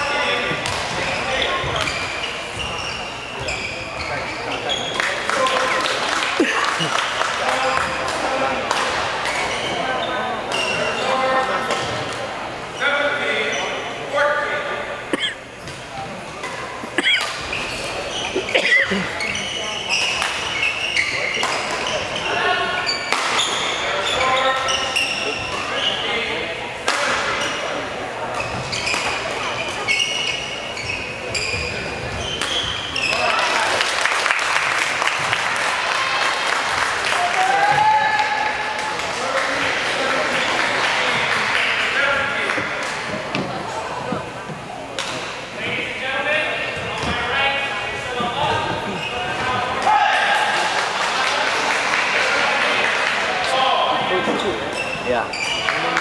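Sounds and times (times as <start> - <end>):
crowd noise: 0.0 - 56.0
spectators talking: 0.0 - 56.0
shoe squeak on court floor: 0.1 - 5.0, 9.3 - 11.2, 17.2 - 26.1, 28.3 - 33.3, 54.7 - 55.8
rackets hitting shuttlecock: 0.6 - 1.0, 23.1 - 23.6, 32.3 - 33.2.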